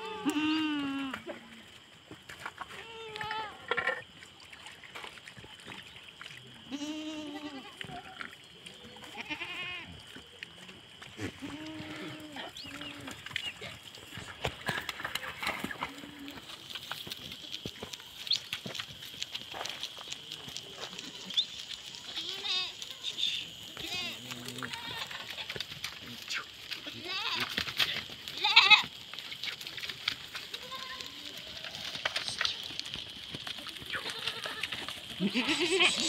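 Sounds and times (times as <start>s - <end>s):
goats bleating: 0.0s - 1.3s, 6.7s - 8.2s, 9.0s - 9.9s, 11.2s - 13.2s, 20.7s - 25.6s, 26.7s - 28.9s, 30.4s - 32.7s, 33.5s - 36.0s.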